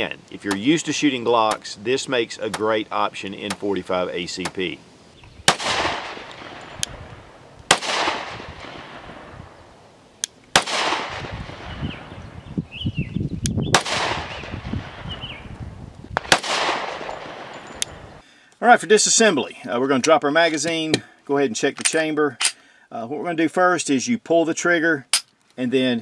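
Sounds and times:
pistol shots with long echo: 5.5 - 9.6, 10.5 - 12.1, 13.8 - 15.1, 16.2 - 17.6.

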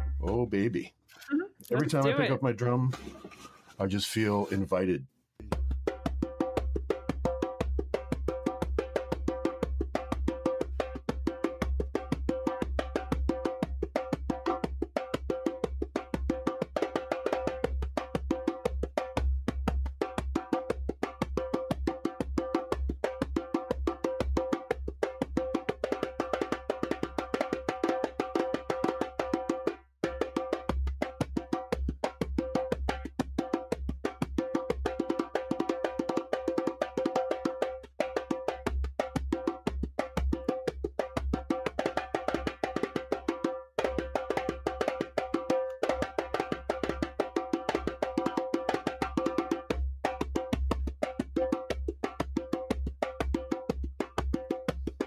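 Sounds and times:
drum played fast: 5.4 - 55.0.

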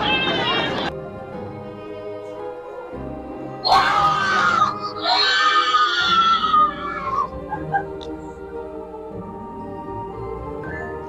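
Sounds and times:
background music: 0.0 - 11.0
woman shrieking: 3.6 - 7.3.

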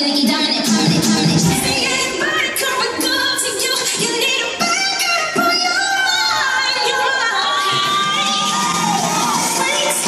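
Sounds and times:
music: 0.0 - 10.0
children shouting and cheering: 4.6 - 10.0.

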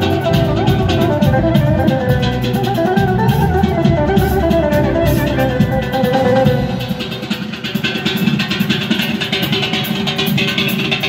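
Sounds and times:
steady percussion beat: 0.0 - 11.0.

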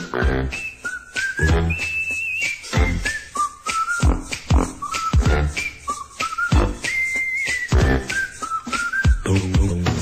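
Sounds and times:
whistled melody: 0.0 - 10.0
bass line: 1.4 - 1.8, 4.0 - 5.7, 7.8 - 8.1.

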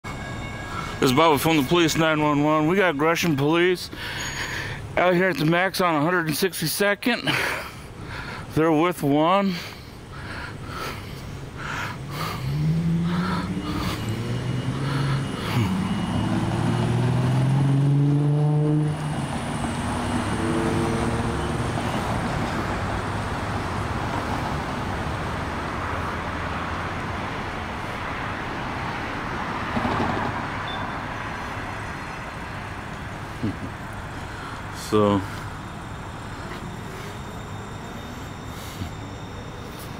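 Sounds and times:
street traffic noise: 0.0 - 39.9
car accelerating and shifting up: 11.6 - 39.0.

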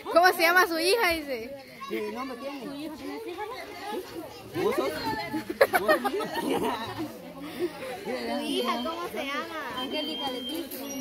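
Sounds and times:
adults and children talking: 0.0 - 11.0
children playing: 0.0 - 11.0.

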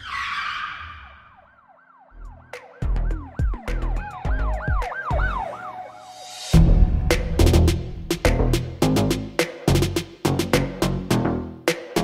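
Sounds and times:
siren-like wail sweeps: 0.0 - 7.1
heavy bass drum hits: 6.6 - 10.0.

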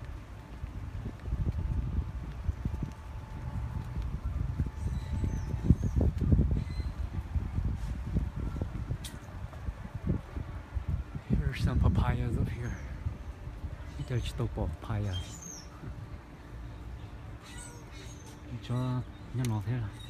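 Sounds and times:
wind and handling rumble on phone: 0.0 - 20.0.

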